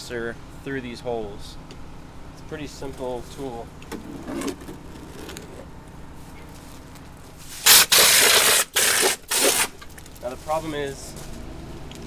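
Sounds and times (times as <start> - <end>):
plaster sprayer hissing blasts: 7.4 - 9.8.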